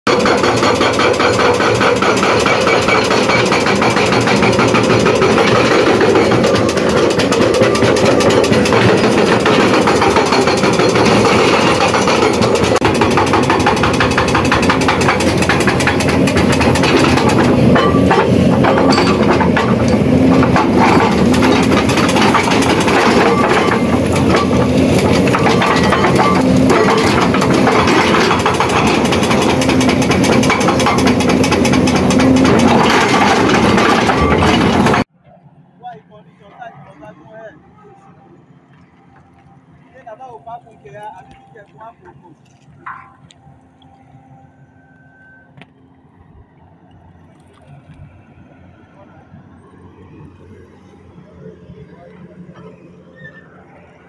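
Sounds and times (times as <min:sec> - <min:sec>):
hydraulic rock breaker pounding: 0:00.1 - 0:35.1
excavator engine running: 0:00.1 - 0:54.0.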